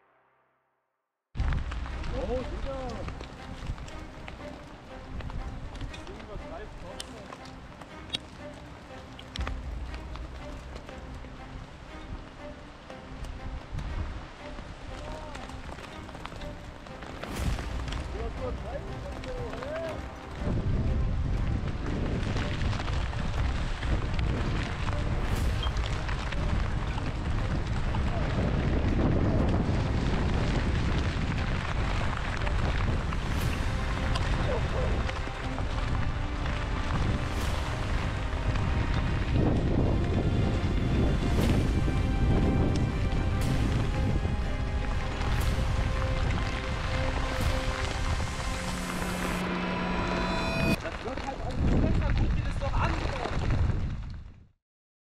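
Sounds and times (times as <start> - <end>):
wind buffeting microphone: 13.1 - 15.0, 15.6 - 48.7, 50.7 - 54.5.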